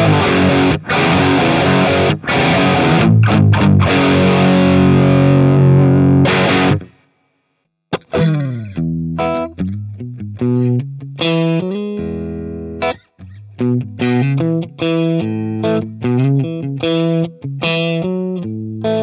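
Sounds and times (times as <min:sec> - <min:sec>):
clean guitar single notes: 0:00.0 - 0:07.0, 0:07.9 - 0:17.2
distorted electric guitar riff: 0:00.0 - 0:07.2, 0:07.9 - 0:19.0.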